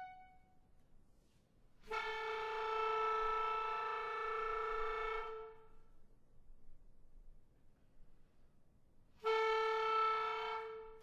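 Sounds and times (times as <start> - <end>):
clarinet long held note: 0.0 - 0.5, 1.8 - 5.9, 9.2 - 11.0.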